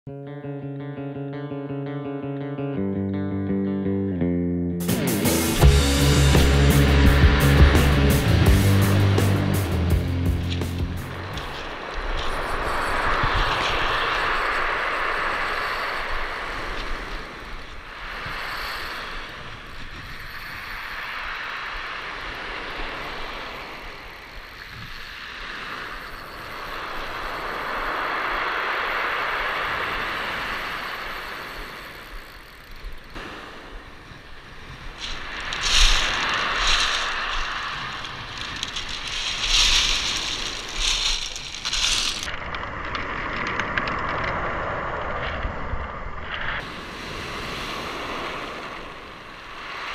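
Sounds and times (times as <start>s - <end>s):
surf washing up pebble beach: 5.3s - 45.8s, 46.4s - 49.9s
pebbles clattering and crunching: 35.0s - 44.1s.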